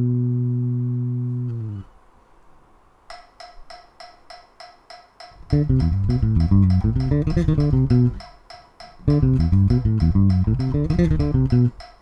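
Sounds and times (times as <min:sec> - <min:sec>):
metronome clicking: 0:03.1 - 0:12.0.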